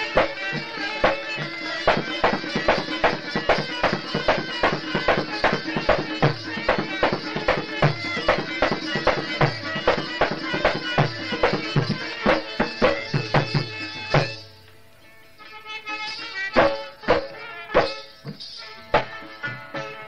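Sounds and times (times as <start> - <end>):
plucked string strokes: 0.0 - 20.0
reedy drone: 0.0 - 20.0.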